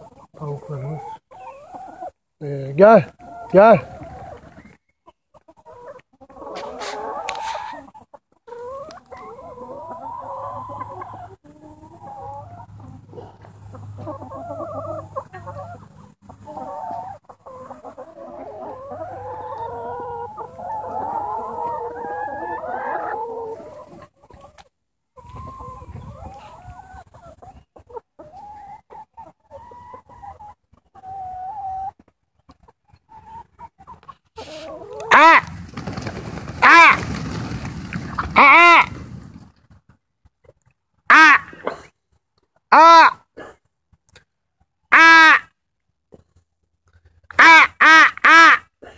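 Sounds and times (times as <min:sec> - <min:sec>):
hens clucking: 0:00.0 - 0:43.3.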